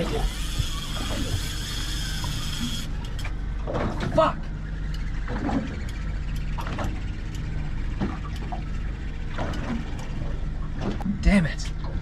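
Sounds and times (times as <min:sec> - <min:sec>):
fishing reel clicker buzzing: 0:00.0 - 0:03.2.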